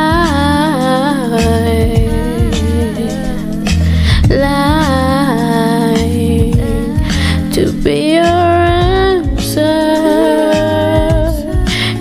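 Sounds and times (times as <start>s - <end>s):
deep bass notes: 0.0s - 10.0s, 10.6s - 12.0s
sustained chords: 0.0s - 12.0s
woman singing wordless vocal: 0.0s - 12.0s.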